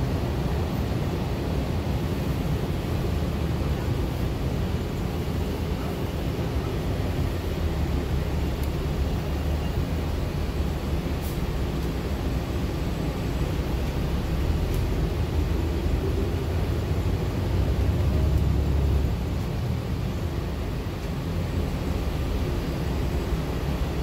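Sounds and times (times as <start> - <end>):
bus engine and road rumble: 0.0 - 24.0.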